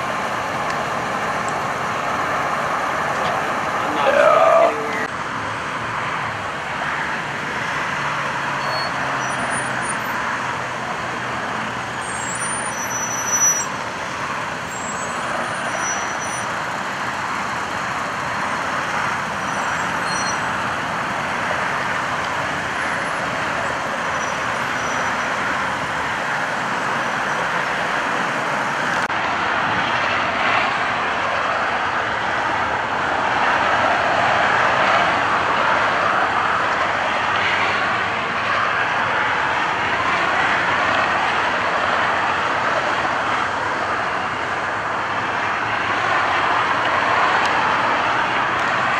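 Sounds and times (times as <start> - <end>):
freeway traffic noise: 0.0 - 48.9.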